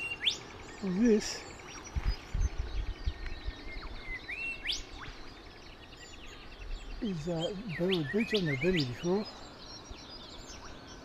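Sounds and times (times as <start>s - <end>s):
birds whistling calls: 0.0s - 11.0s.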